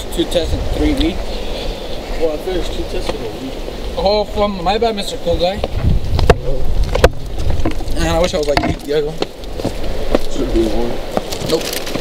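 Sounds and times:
microphone handling rumble: 5.2 - 12.0
sharp clicks and knocks: 5.6 - 9.3.

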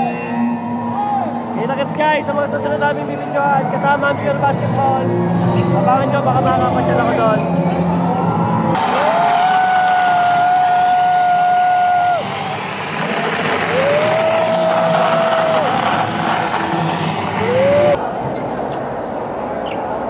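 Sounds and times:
crowd noise: 0.0 - 20.0.

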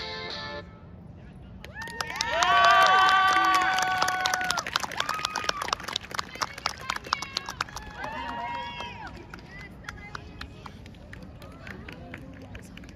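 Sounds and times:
drawn-out cheer: 1.7 - 9.3
audience clapping: 1.7 - 12.9.

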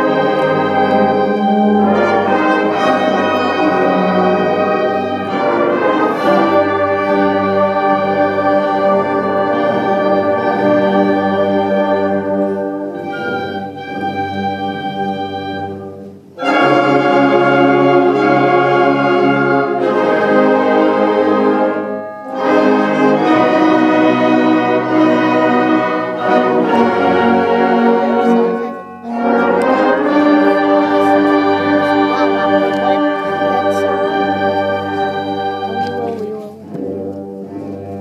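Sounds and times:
brass: 0.0 - 38.0
concert band playing chords: 15.9 - 38.0.

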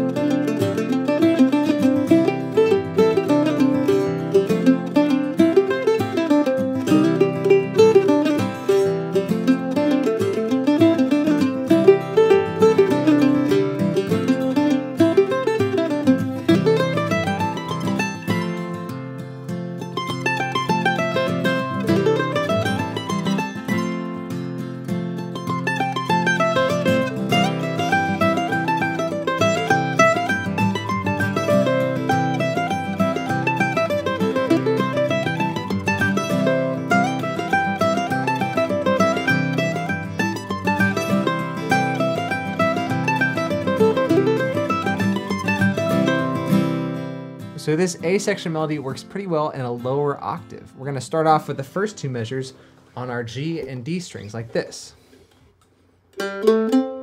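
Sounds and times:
mandolin melody flatpicked: 0.0 - 57.0.

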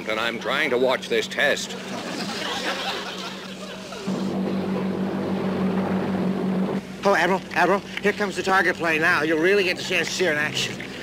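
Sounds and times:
boat engine drone: 0.0 - 11.0.

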